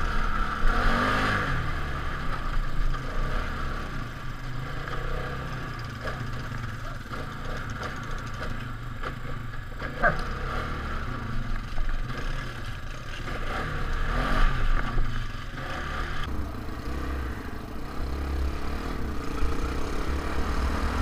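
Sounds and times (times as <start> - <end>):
quad bike engine revving: 0.0 - 21.0
quad clattering over rough ground: 1.6 - 21.0.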